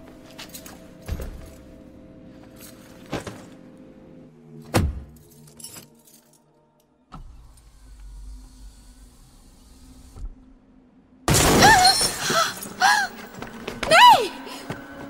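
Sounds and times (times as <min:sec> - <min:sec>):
car window glass breaking: 0:11.3 - 0:12.3
woman crying out: 0:11.6 - 0:13.2, 0:13.8 - 0:14.6.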